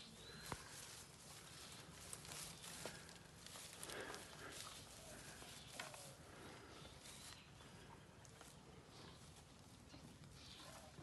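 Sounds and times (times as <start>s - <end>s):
grass rustling: 0.0s - 11.0s.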